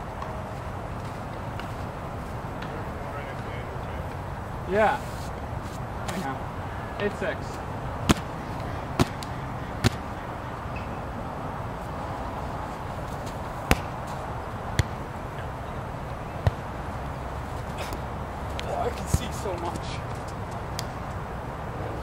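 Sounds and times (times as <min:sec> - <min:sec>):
hands slapping a volleyball: 0:08.0 - 0:08.3, 0:09.0 - 0:10.0, 0:13.6 - 0:13.9.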